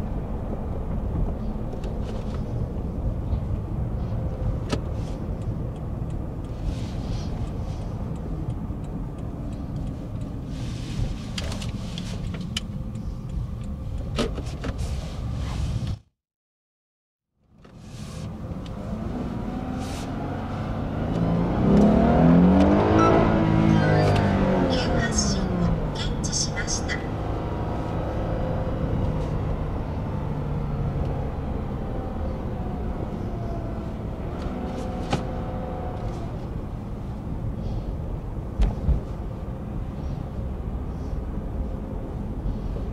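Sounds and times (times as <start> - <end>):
car road and engine rumble: 0.0 - 16.2, 17.3 - 42.9.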